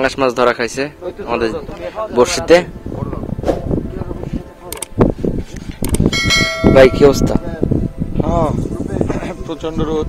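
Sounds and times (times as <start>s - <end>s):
bright bell chime: 6.2s - 7.6s.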